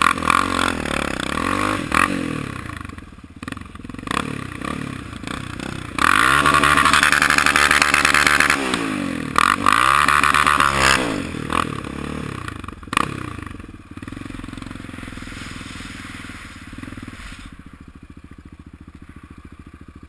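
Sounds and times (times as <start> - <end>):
quad bike engine revving: 0.0 - 20.0
loud rushing noise: 14.4 - 17.8.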